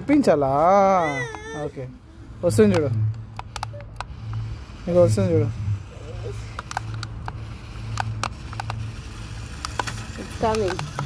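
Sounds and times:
toy truck motor hum: 0.3 - 11.0
sharp clicks and knocks: 2.6 - 4.5, 6.5 - 8.9, 9.5 - 11.0.

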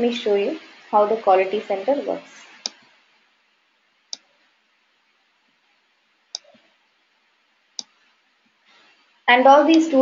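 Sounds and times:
computer mouse clicks: 2.6 - 2.8, 4.1 - 4.3, 6.3 - 6.7, 7.8 - 8.1.

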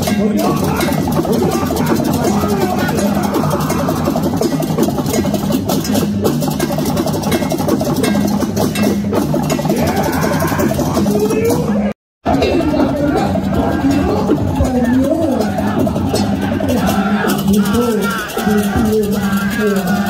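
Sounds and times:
gamelan music: 0.0 - 20.0.

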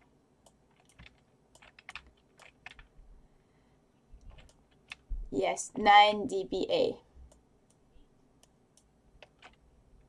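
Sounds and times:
faint keyboard typing: 0.0 - 3.0, 4.2 - 5.2, 7.2 - 9.7.

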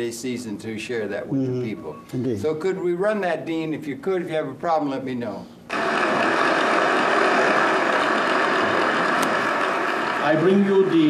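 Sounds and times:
steady recording hiss: 0.0 - 11.0.

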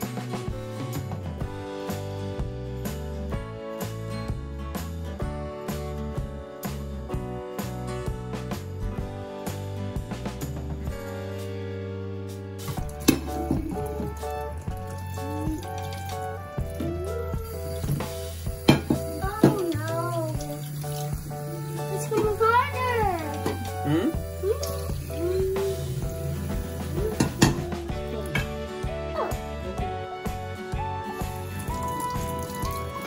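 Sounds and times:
background music: 0.0 - 33.0
tap water running into sink: 12.6 - 28.6, 31.1 - 33.0
dishes clinking: 13.0 - 14.1, 18.7 - 19.6.

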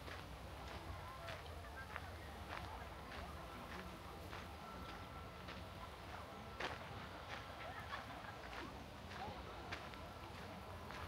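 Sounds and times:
footsteps on dirt path: 0.0 - 7.6, 8.4 - 11.0
faint distant voices: 0.0 - 11.0.

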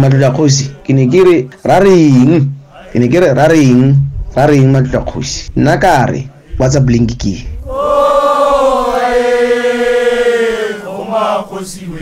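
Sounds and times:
person singing long note: 7.7 - 10.9.

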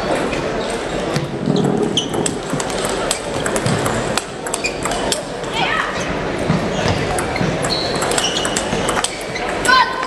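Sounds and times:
hubbub of many voices: 0.0 - 10.0
table tennis balls clicking: 1.1 - 5.6, 6.4 - 10.0.

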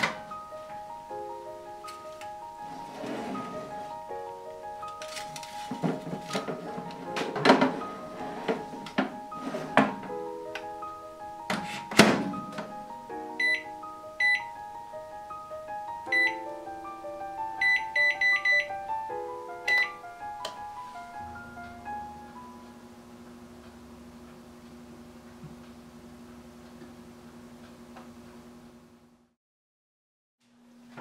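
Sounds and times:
microwave door shutting: 0.0 - 0.4, 5.0 - 10.2, 11.5 - 12.8
background music: 0.0 - 23.1
keypad beeps: 13.4 - 14.5, 16.1 - 16.4, 17.6 - 18.7, 19.7 - 20.0.

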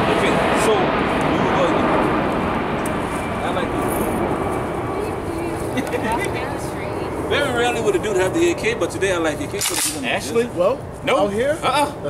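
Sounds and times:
indistinct talking: 0.0 - 12.0
laughter: 5.7 - 6.3.

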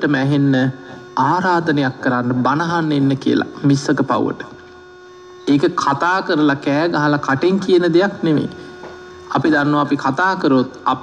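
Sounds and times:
man preaching: 0.0 - 4.6, 5.5 - 8.6, 9.3 - 11.0
faint electrical hum: 0.0 - 11.0.

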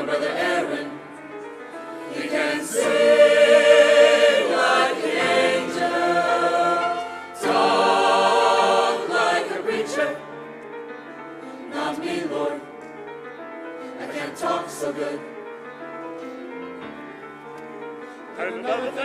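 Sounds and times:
youth choir singing chords: 0.0 - 1.2, 1.8 - 10.4, 11.6 - 12.8, 13.9 - 15.5.

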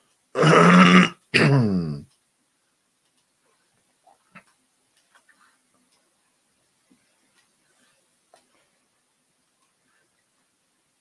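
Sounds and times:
man clearing his throat: 0.4 - 2.0.

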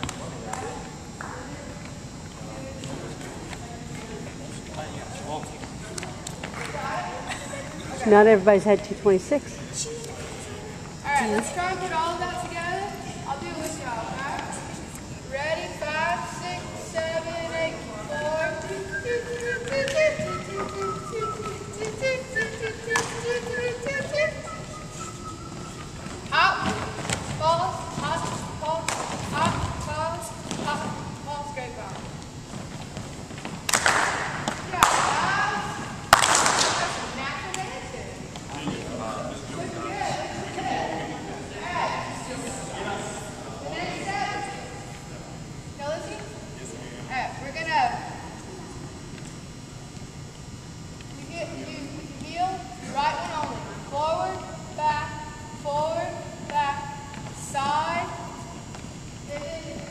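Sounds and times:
people calling out and talking: 6.8 - 31.5.

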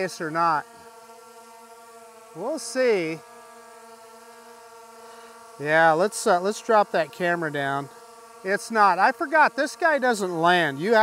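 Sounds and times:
drone propeller hum: 0.0 - 11.0.

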